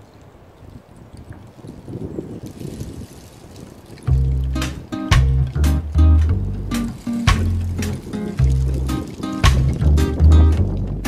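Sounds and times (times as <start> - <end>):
faint rustling crackle: 0.0 - 4.4
wind buffeting microphone: 0.0 - 11.0.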